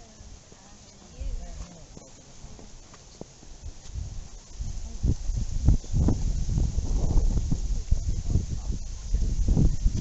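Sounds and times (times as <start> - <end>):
wind buffeting microphone: 3.5 - 10.0.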